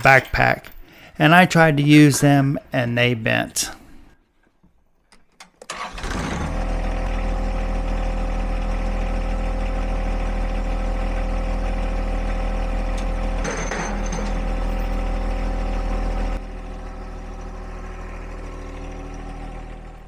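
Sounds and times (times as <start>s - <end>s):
tractor diesel engine idling: 5.7s - 20.0s.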